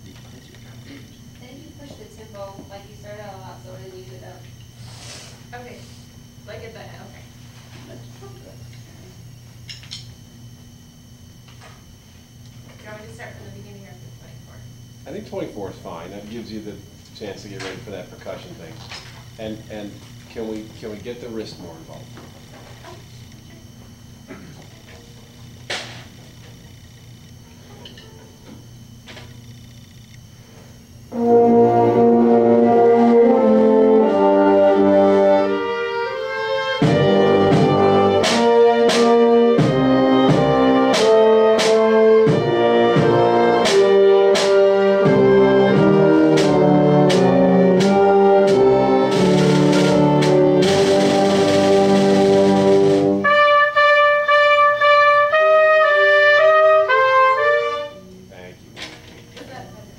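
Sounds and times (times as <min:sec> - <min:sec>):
string ensemble playing: 0:31.1 - 0:58.0
sharp accented orchestral hits: 0:31.1 - 0:58.1.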